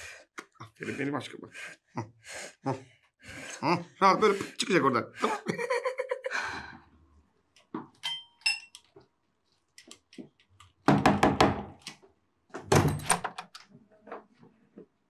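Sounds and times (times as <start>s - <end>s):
knocking on wooden door: 10.9s - 11.8s
door unlatched and opened: 12.6s - 13.7s.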